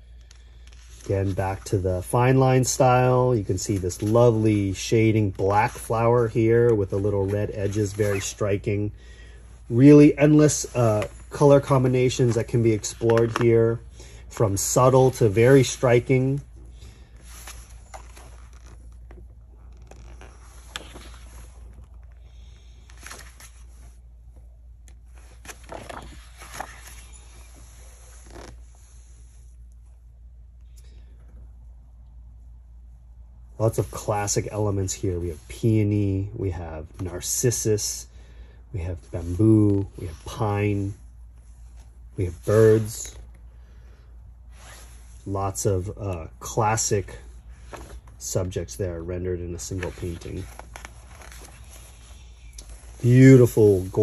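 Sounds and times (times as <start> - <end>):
low steady hum: 0.0 - 54.0
paper page turning: 10.4 - 13.8, 19.8 - 23.9, 25.1 - 28.6, 49.7 - 54.0.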